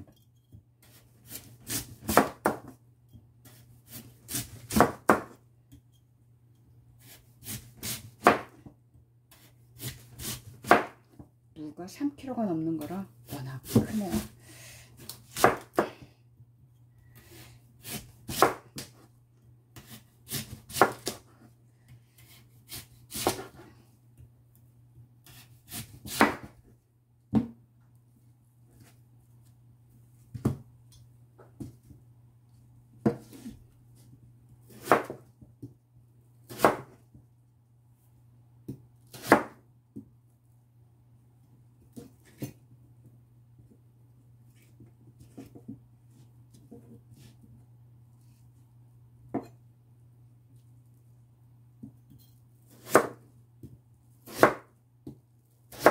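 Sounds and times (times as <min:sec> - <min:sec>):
knife chopping on plastic board: 0:00.9 - 0:02.8, 0:03.5 - 0:05.4, 0:07.1 - 0:08.7, 0:09.3 - 0:11.2, 0:15.0 - 0:16.1, 0:17.8 - 0:19.1, 0:19.8 - 0:21.3, 0:22.2 - 0:23.6, 0:25.2 - 0:26.6, 0:34.7 - 0:35.7, 0:36.5 - 0:37.0, 0:38.7 - 0:40.1, 0:52.7 - 0:55.9.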